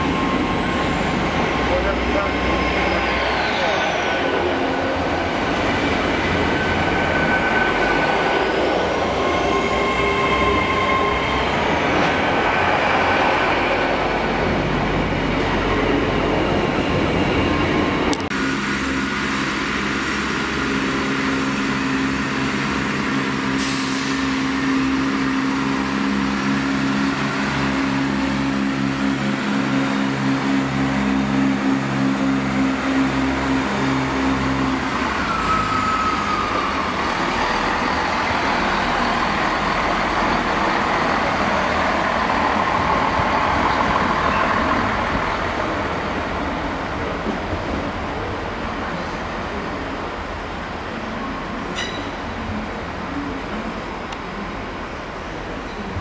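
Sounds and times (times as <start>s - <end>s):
train wheel noise with squeals: 0.0s - 5.2s, 6.0s - 14.6s, 15.4s - 46.3s, 51.1s - 52.6s, 55.4s - 56.0s
diesel train engine droning: 0.0s - 55.6s.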